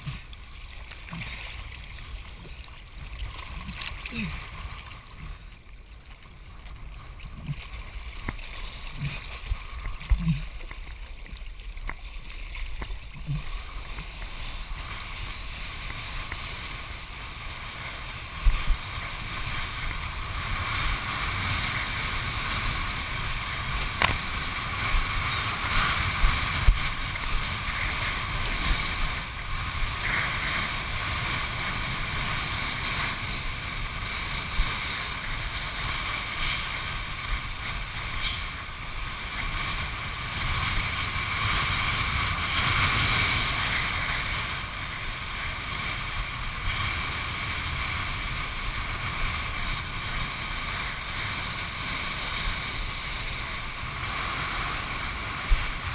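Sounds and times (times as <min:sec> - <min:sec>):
rushing water: 0:00.0 - 0:55.9.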